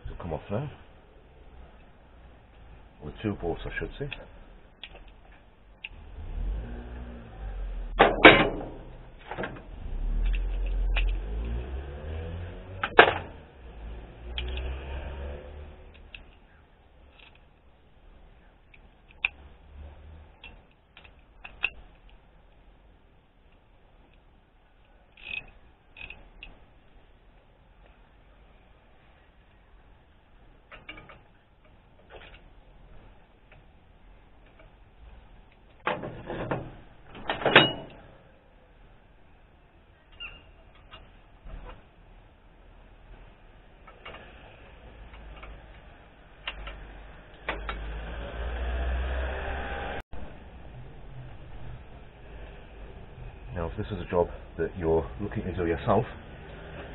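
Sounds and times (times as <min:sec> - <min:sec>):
low rumble: 0:47.9 - 0:54.6.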